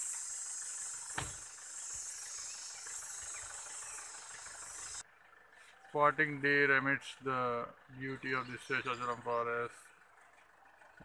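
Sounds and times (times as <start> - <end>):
insects droning: 0.0 - 5.5.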